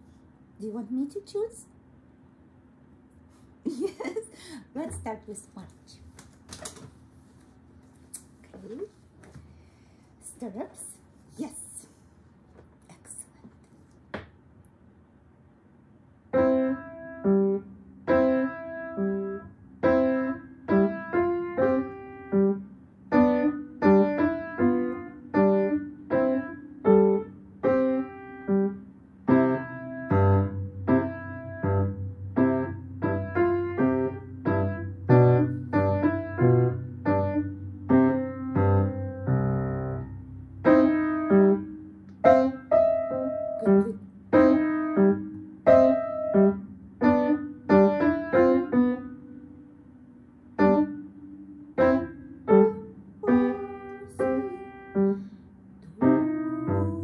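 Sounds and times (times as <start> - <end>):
piano melody: 16.3 - 57.0
low piano bass line: 16.4 - 57.0.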